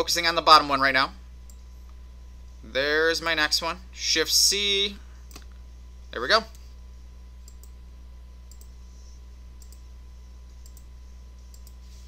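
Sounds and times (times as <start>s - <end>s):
steady low hum: 0.0s - 12.0s
computer mouse clicking: 7.5s - 7.8s, 8.5s - 8.8s, 9.6s - 9.9s, 10.6s - 10.9s, 11.5s - 11.8s.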